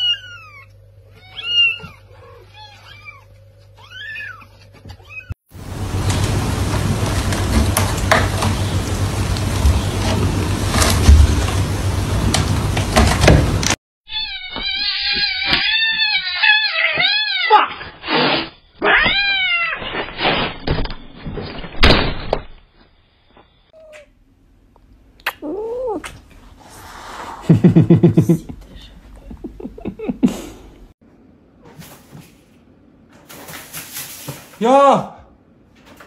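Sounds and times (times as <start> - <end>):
cat meowing: 0.0 - 5.4, 18.8 - 19.8.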